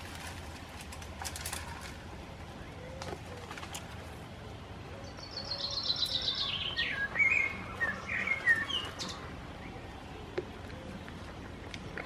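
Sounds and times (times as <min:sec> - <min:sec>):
songbird singing: 0:01.6 - 0:12.0.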